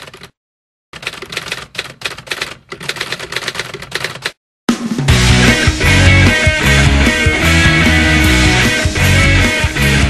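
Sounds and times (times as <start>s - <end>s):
loud music: 4.7s - 10.0s.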